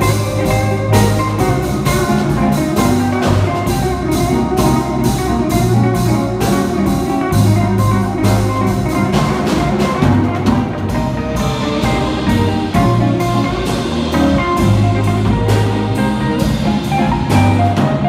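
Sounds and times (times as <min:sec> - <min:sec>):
drum kit cymbal beat: 0:00.0 - 0:18.0
electric bass: 0:00.0 - 0:18.0
electric guitar: 0:00.0 - 0:18.0
keyboard: 0:00.0 - 0:18.0.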